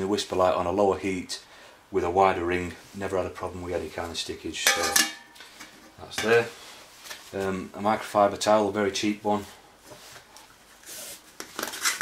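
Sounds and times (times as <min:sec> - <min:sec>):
metal cooking pot clinks: 0:04.7 - 0:05.4.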